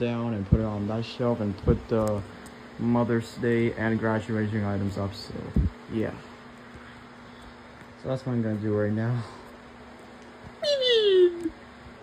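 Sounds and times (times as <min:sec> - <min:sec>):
steady buzzing hum: 0:00.0 - 0:12.0.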